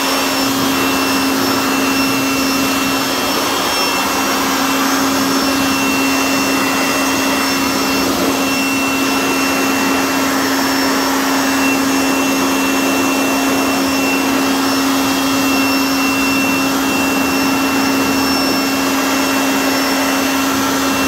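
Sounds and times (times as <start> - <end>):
electric leaf blower running: 0.0 - 21.0.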